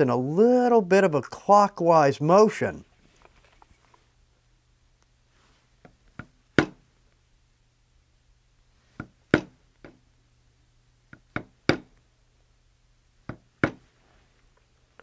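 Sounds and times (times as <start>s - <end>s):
mallet striking stamping tool: 6.2s - 6.8s, 9.0s - 10.0s, 11.1s - 11.9s, 13.3s - 13.8s.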